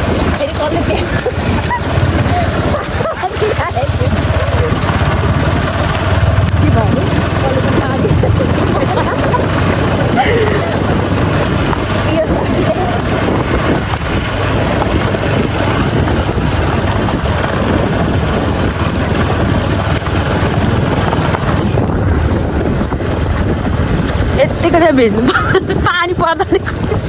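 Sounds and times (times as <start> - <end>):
vehicle rumble and wind: 0.0 - 27.0.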